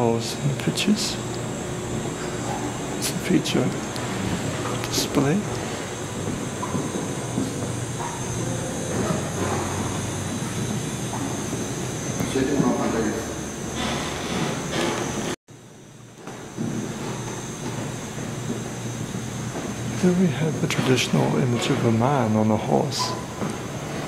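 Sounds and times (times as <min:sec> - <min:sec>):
room noise: 0:00.0 - 0:24.0.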